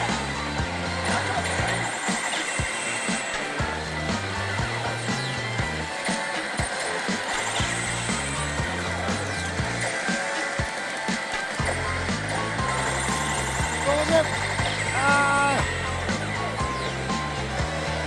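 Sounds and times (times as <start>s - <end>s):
pachinko parlor noise: 0.0s - 18.0s
slot machine music with bass: 0.0s - 18.0s.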